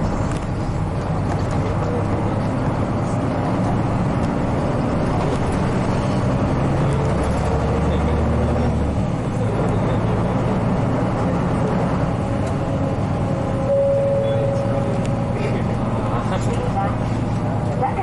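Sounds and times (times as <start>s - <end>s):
bus diesel engine: 0.0s - 18.0s
road and running noise: 0.0s - 18.0s.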